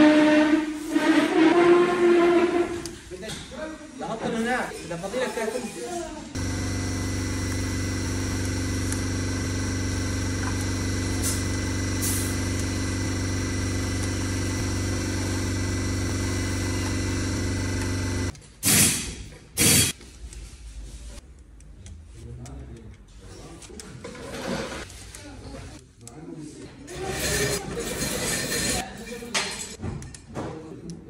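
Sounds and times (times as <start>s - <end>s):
machine humming: 6.4s - 18.3s.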